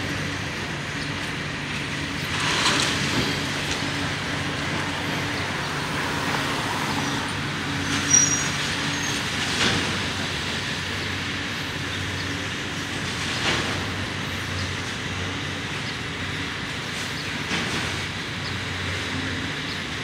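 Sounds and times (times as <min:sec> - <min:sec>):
heavy engine running: 0:00.0 - 0:20.0
street noise: 0:00.0 - 0:20.0
high squeal: 0:07.8 - 0:09.3.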